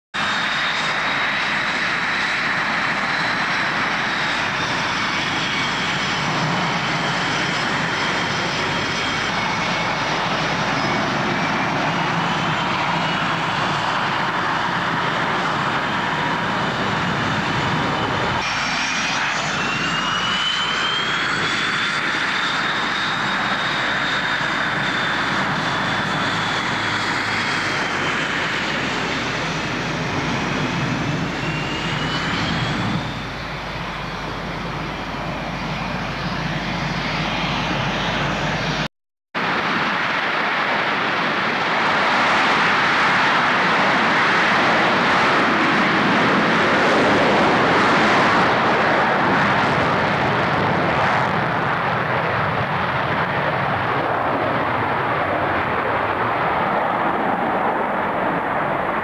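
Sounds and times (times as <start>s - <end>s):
high jet whine: 0.2s - 59.0s
jet engines taxiing: 0.2s - 59.0s.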